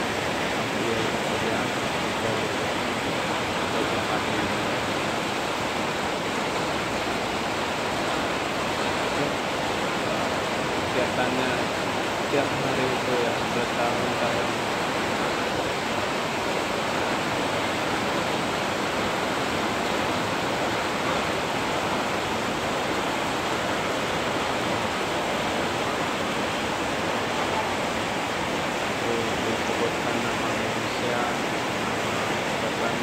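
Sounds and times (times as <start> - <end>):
heavy rain falling: 0.0 - 33.0.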